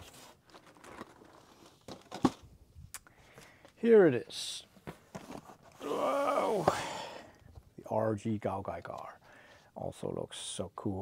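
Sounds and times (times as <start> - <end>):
cardboard packaging rustling: 0.0 - 2.5, 4.8 - 5.9.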